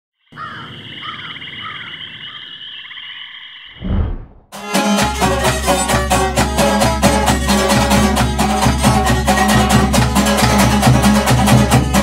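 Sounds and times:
loud low thud: 0:03.8 - 0:04.5.

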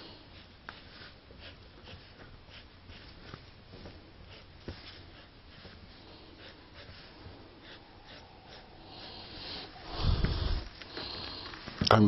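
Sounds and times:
marker scratching on fabric: 0:00.0 - 0:11.5.

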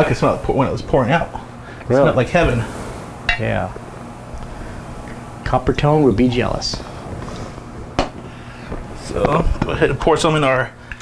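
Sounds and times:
low background rumble: 0:00.0 - 0:10.2.

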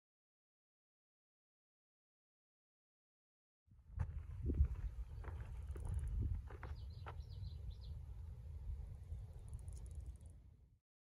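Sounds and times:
wind rumble on microphone: 0:03.8 - 0:10.4
footsteps on dirt trail: 0:04.0 - 0:07.4
bird chirping: 0:06.6 - 0:08.0.

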